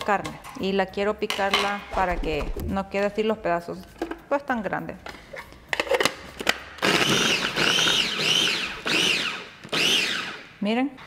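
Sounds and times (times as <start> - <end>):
food chopper motor whirring: 6.8 - 10.5.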